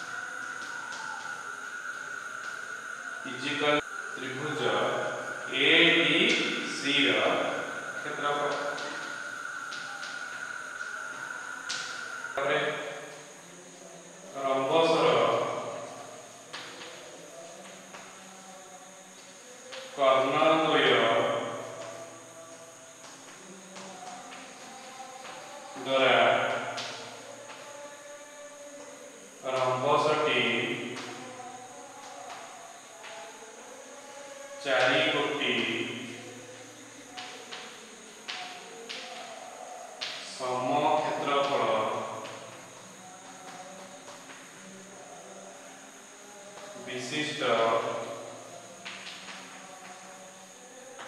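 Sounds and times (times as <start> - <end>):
faint steady hum: 0.0 - 51.0
man speaking: 3.2 - 9.0, 12.4 - 12.8, 14.3 - 15.7, 20.0 - 21.5, 25.8 - 26.4, 29.5 - 30.8, 34.6 - 36.0, 40.3 - 42.1, 46.8 - 48.0.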